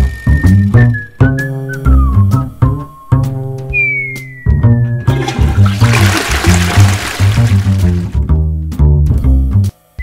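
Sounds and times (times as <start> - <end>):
cartoon toilet flush: 4.8 - 8.2.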